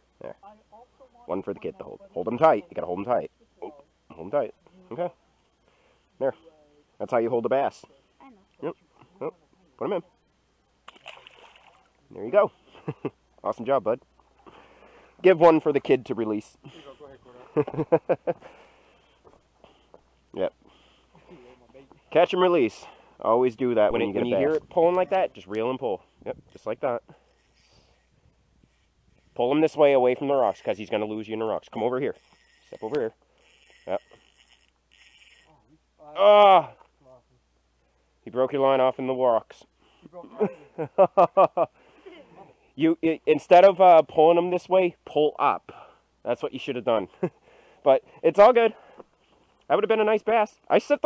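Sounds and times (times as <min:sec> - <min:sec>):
faint splash of fish in water: 0:10.8 - 0:12.0
fishing reel whirring: 0:24.9 - 0:25.3, 0:26.5 - 0:29.4, 0:30.4 - 0:30.9, 0:32.0 - 0:35.6.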